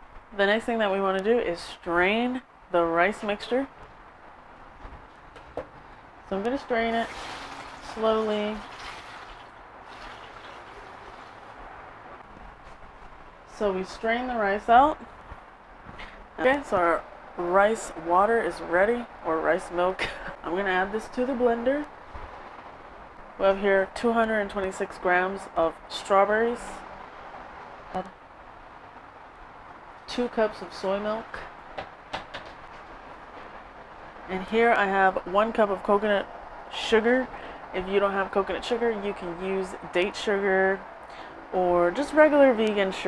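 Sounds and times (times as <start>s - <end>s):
liquid pouring through a strainer: 7.0s - 8.0s, 8.6s - 11.4s.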